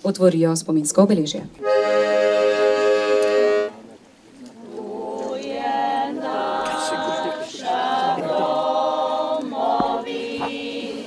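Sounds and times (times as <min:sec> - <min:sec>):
choir singing unaccompanied: 0:04.5 - 0:11.0.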